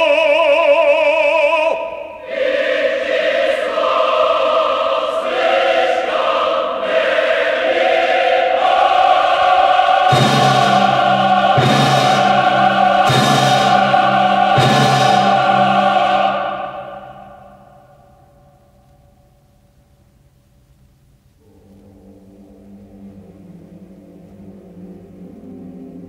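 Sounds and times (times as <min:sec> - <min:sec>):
choir singing with orchestra: 0:00.0 - 0:19.0, 0:21.4 - 0:26.0
heavy strikes: 0:07.7 - 0:18.3
deep held chord: 0:10.1 - 0:17.8.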